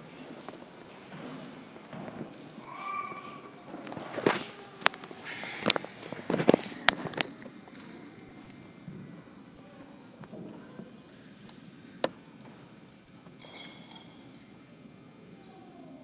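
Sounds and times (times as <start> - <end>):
metal vessels clinking: 13.4 - 14.2.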